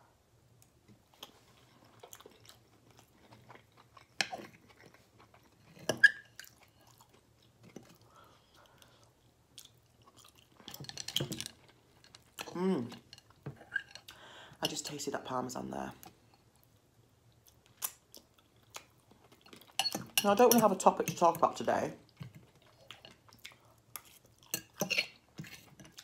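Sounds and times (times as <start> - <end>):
chewing and mouth noises: 1.1 - 10.8, 16.3 - 20.0, 22.1 - 26.0.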